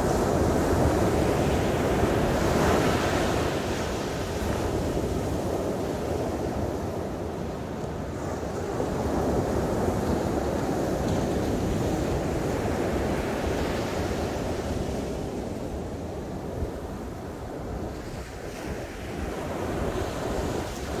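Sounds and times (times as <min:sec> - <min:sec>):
ocean surf breaking on beach: 0:00.0 - 0:21.0.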